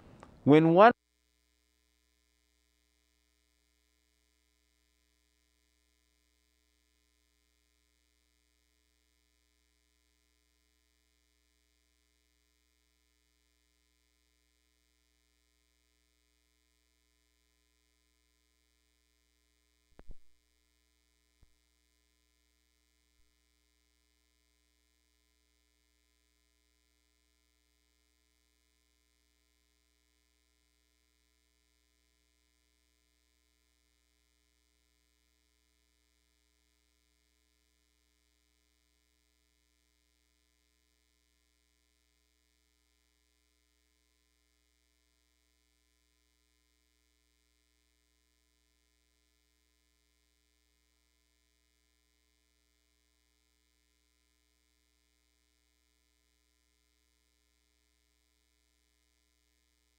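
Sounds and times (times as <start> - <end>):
faint steady hum: 0.0 - 59.9
brief knock: 20.0 - 20.3.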